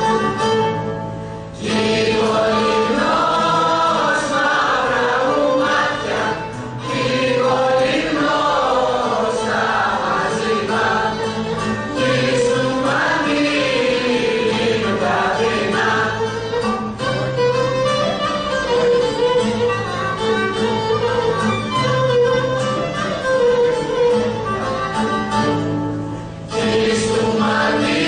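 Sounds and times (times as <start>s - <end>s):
women singing folk song: 1.6s - 16.8s, 26.5s - 28.0s.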